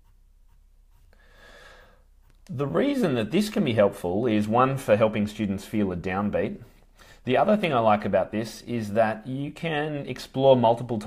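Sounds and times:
soft breath: 1.0 - 2.1, 6.6 - 7.3.

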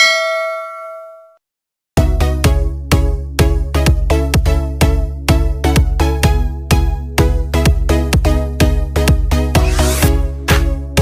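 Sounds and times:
bell-like notification ding: 0.0 - 1.4
music: 2.0 - 11.0.

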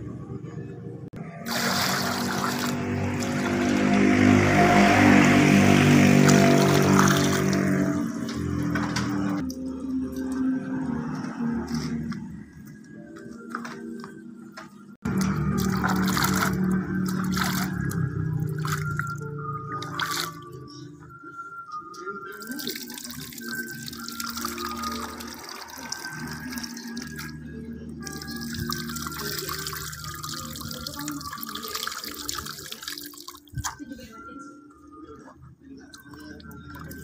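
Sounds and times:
background music: 0.0 - 37.0
water sloshing in a bucket: 1.3 - 12.3, 15.1 - 20.7, 22.3 - 27.4, 28.0 - 34.0, 35.8 - 37.0
water running off hand: 1.4 - 8.0, 15.1 - 20.4, 22.3 - 27.4, 28.0 - 33.6.

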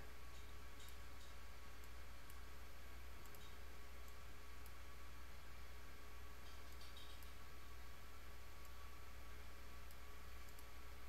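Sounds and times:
low electrical hum: 0.0 - 11.0
faint computer mouse clicks: 3.2 - 4.8, 9.8 - 10.7.

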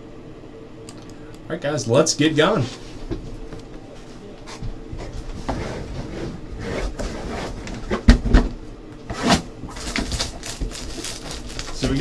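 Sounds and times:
cardboard box scraping and rustling: 9.1 - 11.7.

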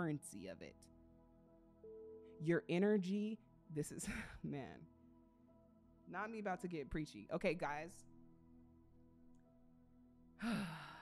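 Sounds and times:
faint background music: 0.0 - 11.0
person sighing: 10.4 - 11.0.

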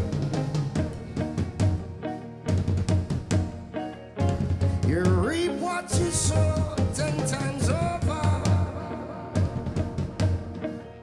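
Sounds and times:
live reggae band playing: 0.0 - 11.0.

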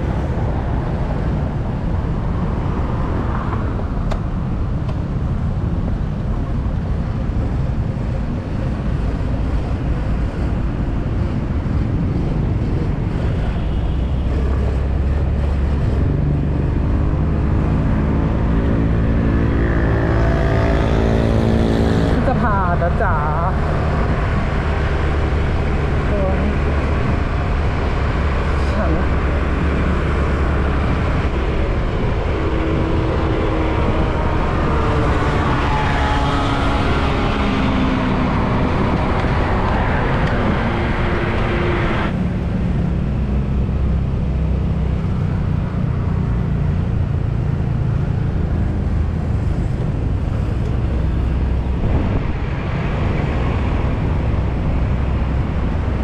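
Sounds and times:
passing traffic: 0.0 - 56.0
wind and road rush: 0.0 - 56.0.

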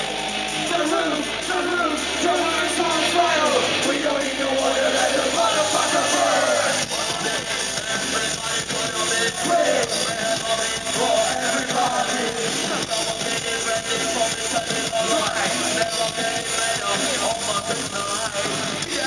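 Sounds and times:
live electronic band music: 0.0 - 19.0
people singing into microphones: 2.2 - 19.0.

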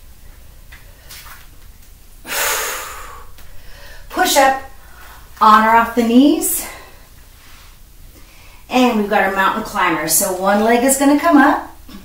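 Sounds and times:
woman breathing hard: 2.2 - 4.1.

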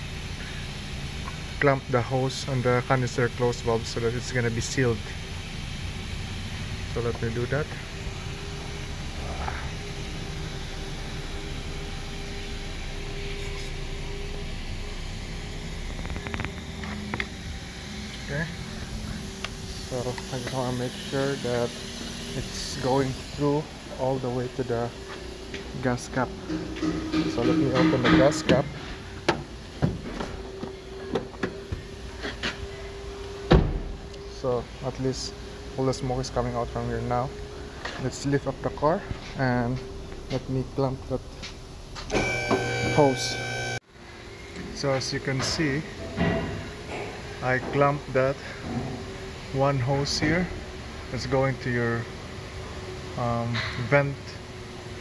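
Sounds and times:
machinery humming: 0.0 - 55.0.

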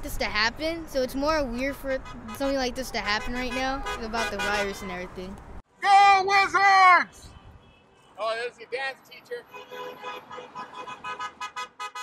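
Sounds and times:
car horn held tone: 9.5 - 12.0
car horn short toots: 9.5 - 12.0.

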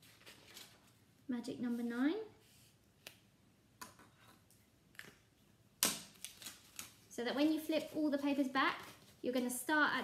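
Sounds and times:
paper rustling: 0.0 - 1.0.

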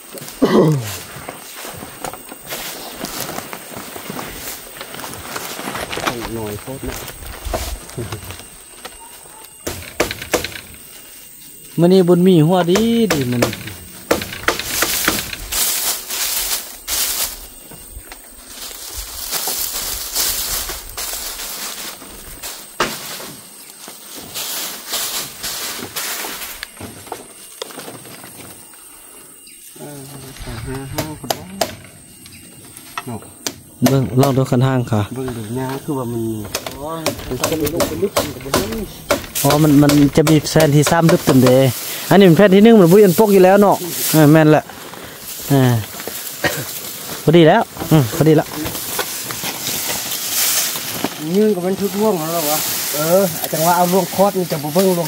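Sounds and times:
thatch and bamboo crackling: 1.2 - 11.2, 12.6 - 28.8, 35.5 - 55.0.

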